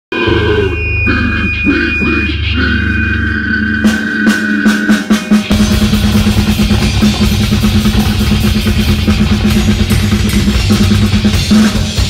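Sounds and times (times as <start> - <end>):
distorted electric guitars and bass: 0.1 - 12.0
drum kit hits: 4.9 - 12.0.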